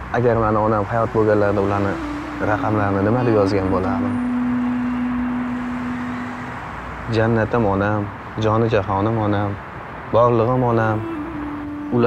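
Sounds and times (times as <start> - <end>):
pure held tone: 1.6 - 7.4.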